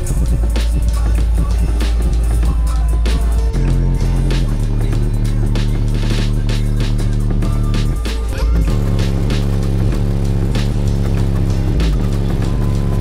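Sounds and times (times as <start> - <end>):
bass-heavy music from car stereo: 0.0 - 13.0.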